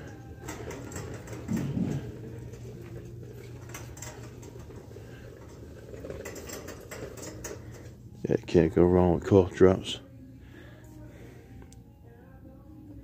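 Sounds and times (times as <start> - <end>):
shopping cart rattling: 0.0 - 8.0.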